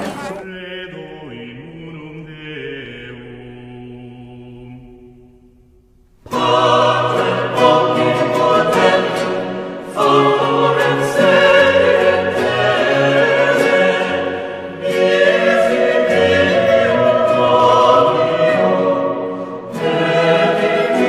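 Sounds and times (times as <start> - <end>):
choir singing sustained chords: 0.4 - 21.0.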